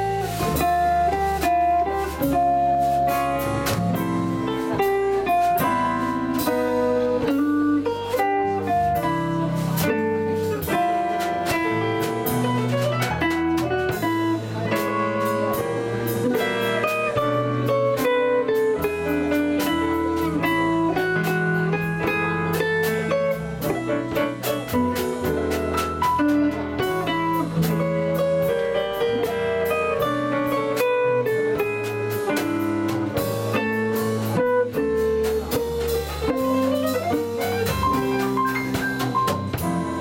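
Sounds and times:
digital piano: 0.0 - 40.0
drums with cymbals: 0.0 - 40.0
upright bass: 0.0 - 40.0.

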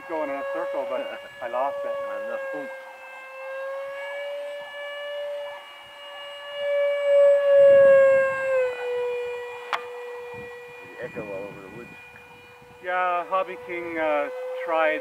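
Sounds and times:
model aircraft motor whining: 0.0 - 5.4, 6.4 - 15.0
low wind rumble: 7.2 - 15.0.

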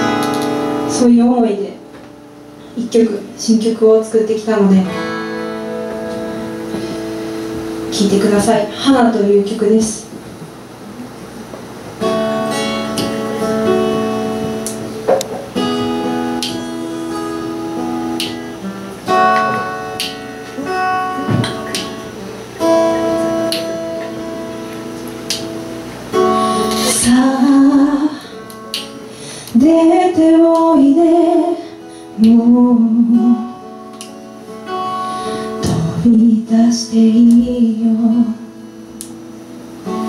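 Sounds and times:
acoustic guitar chords: 0.0 - 40.0
woman singing: 26.3 - 33.7, 35.6 - 38.6.

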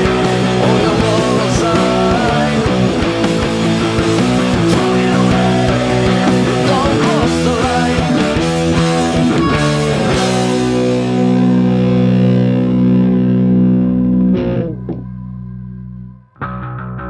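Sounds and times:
distorted electric guitar riff: 0.0 - 17.0.

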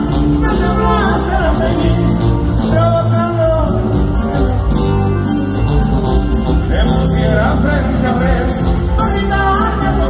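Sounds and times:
live band music with bass: 0.0 - 10.0.

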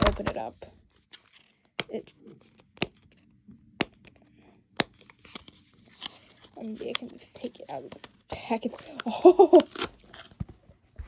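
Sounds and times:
plastic packet snapping: 8.9 - 10.4.

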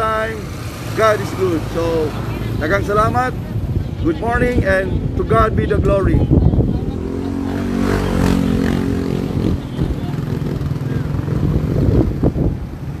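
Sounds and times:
wind rumbling on microphone: 0.0 - 13.0
motorcycle engine passing: 6.4 - 12.5.

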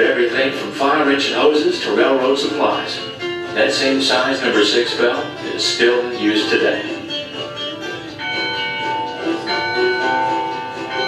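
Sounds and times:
church bell ringing over speakers: 7.7 - 11.0.

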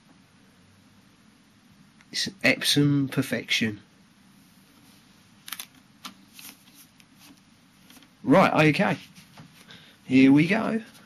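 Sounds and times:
handling rustles: 4.7 - 8.2.

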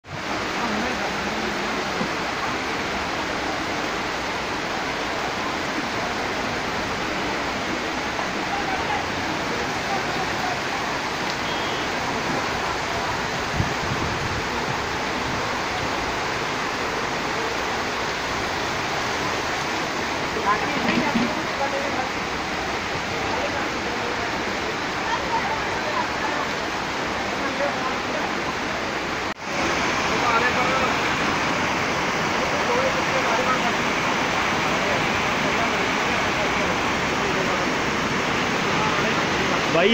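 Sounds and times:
floodwater rushing: 0.0 - 39.9
heavy rain pouring: 0.0 - 39.9.

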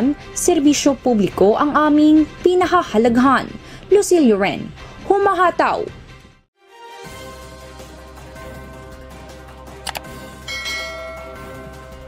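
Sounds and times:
background music: 0.0 - 12.0
bright bell chime: 10.4 - 12.0.

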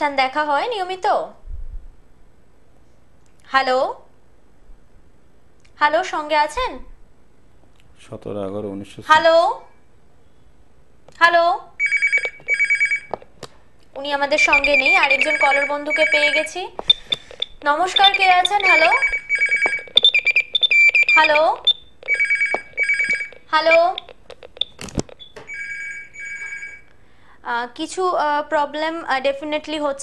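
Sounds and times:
telephone ringing: 11.8 - 13.3, 14.2 - 26.9.

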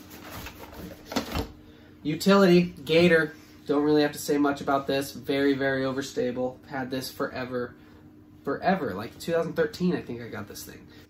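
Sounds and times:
plastic discs rustling: 0.0 - 1.6.

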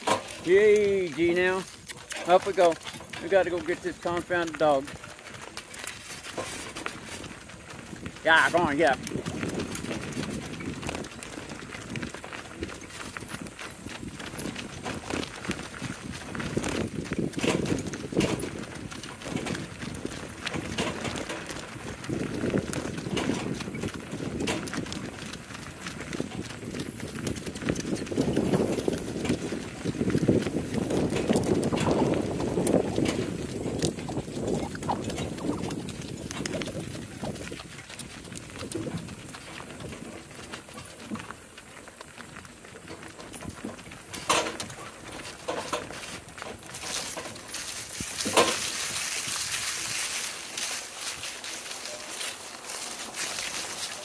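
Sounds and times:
cart wheels rumbling on gravel: 0.0 - 54.0
hooves clip-clopping on gravel: 0.0 - 54.0.

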